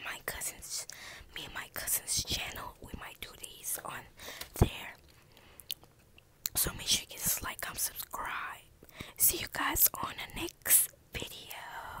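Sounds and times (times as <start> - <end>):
person whispering: 0.0 - 5.0, 6.5 - 12.0.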